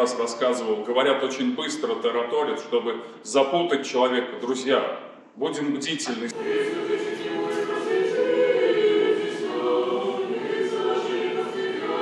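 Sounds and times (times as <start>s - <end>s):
choir singing unaccompanied chant: 6.3s - 12.0s.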